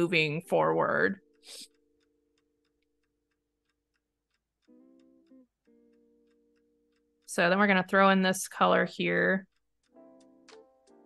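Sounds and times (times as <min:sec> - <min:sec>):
light ticking beat: 0:00.0 - 0:11.0.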